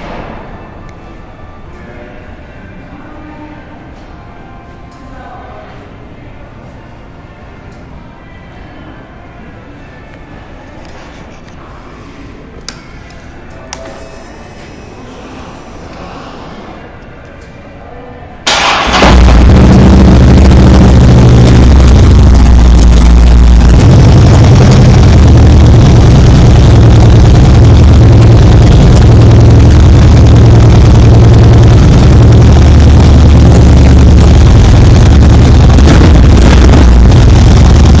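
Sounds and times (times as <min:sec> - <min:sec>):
motorcycle starter cranking: 0:18.5 - 0:19.4
motorcycle engine idling: 0:19.0 - 0:38.0.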